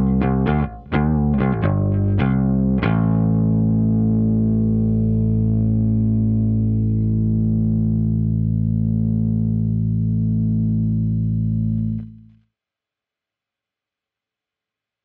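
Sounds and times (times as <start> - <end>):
electric bass note ringing: 0.0 - 12.3.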